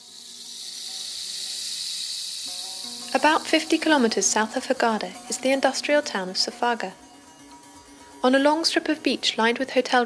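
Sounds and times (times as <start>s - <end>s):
high steady hissing: 0.0s - 9.4s.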